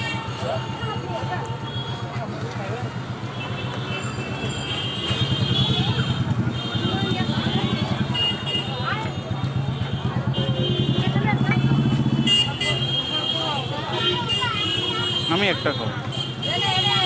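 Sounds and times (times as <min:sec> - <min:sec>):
street traffic: 0:00.0 - 0:17.0
voices: 0:00.0 - 0:17.0.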